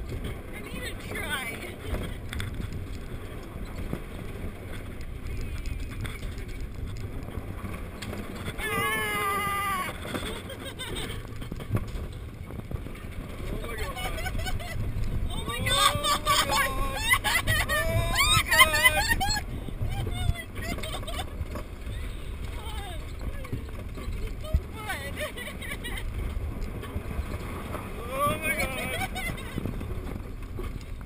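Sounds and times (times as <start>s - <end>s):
low rumble of spinning ride: 0.0s - 31.0s
wind buffeting microphone: 0.0s - 31.0s
people calling out: 8.6s - 10.0s, 15.3s - 19.4s, 27.9s - 29.2s
rising wavering whoop: 8.6s - 10.0s, 15.4s - 19.4s, 28.0s - 29.1s.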